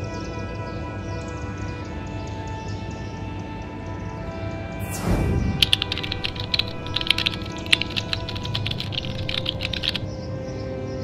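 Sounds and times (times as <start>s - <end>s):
background music: 0.0s - 11.0s
quick whoosh: 4.8s - 8.3s
keyboard typing clicks: 5.8s - 10.0s.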